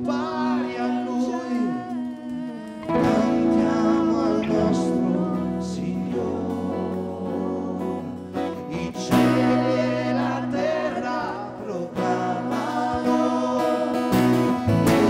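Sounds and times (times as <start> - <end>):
held chords: 0.0 - 15.0
man singing into a microphone: 0.0 - 15.0
strummed acoustic guitar: 2.7 - 15.0.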